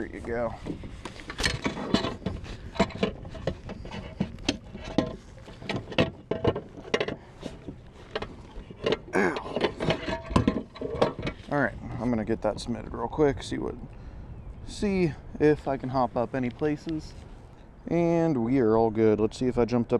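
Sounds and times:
person speaking: 0:00.0 - 0:00.7, 0:09.1 - 0:09.8
gear knocking and rattling: 0:00.6 - 0:11.5.

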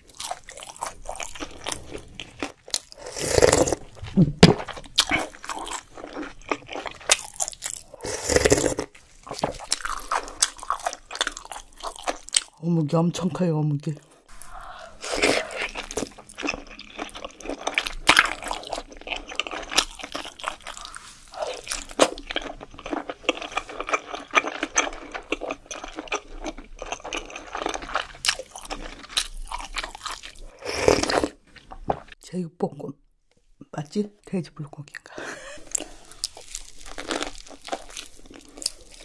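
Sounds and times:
crunchy chewing: 0:00.0 - 0:12.6, 0:14.0 - 0:32.1, 0:35.6 - 0:39.0.

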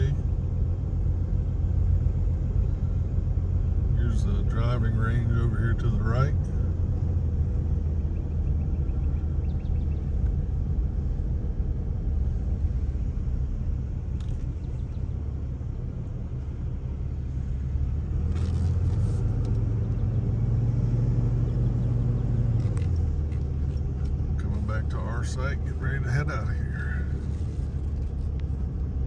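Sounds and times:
car engine and tyre noise: 0:00.0 - 0:29.0.

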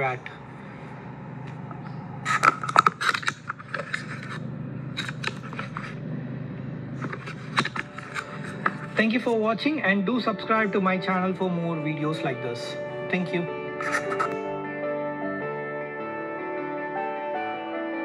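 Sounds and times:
car engine idling: 0:00.0 - 0:11.8
clicks and scrapes: 0:02.3 - 0:04.4, 0:05.0 - 0:06.0, 0:07.0 - 0:09.0, 0:13.8 - 0:14.4.

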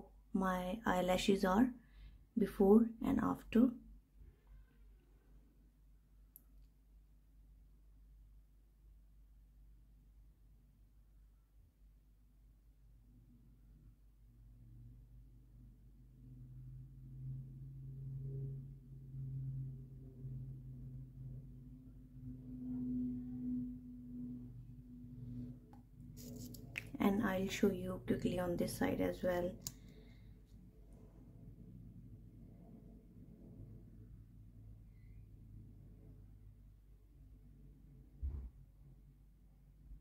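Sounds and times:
low hum: 0:00.0 - 0:40.0.

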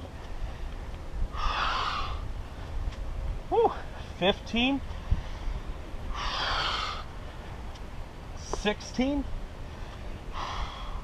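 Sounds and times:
man exhaling forcefully: 0:06.1 - 0:07.0.

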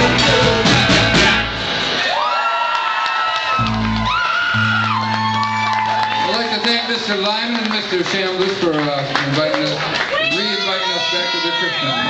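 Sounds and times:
rock song: 0:00.0 - 0:02.2
audience whooping and cheering: 0:00.9 - 0:12.0.

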